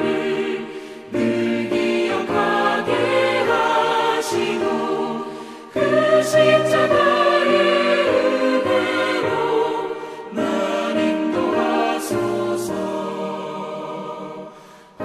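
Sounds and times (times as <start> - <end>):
choir singing a hymn: 0.0 - 15.0.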